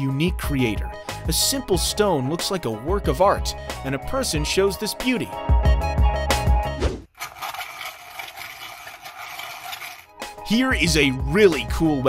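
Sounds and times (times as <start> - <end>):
card shuffler rattling: 7.1 - 10.6.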